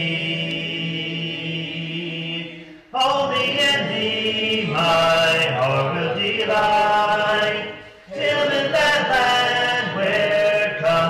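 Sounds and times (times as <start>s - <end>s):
congregation singing a hymn: 0.0s - 11.0s
man's voice leading singing: 0.0s - 11.0s.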